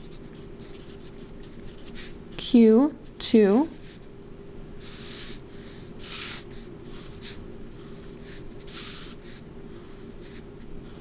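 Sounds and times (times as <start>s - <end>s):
felt-tip marker writing on paper: 0.0s - 2.2s, 8.0s - 11.0s.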